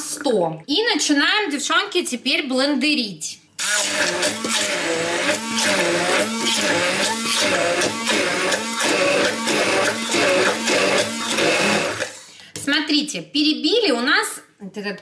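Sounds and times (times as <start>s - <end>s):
immersion blender running: 3.6s - 12.3s.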